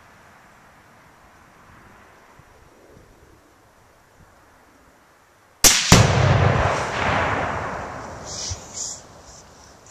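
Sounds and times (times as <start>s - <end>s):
suppressed rifle shot: 5.6s - 9.0s
explosive target booming: 5.7s - 8.4s.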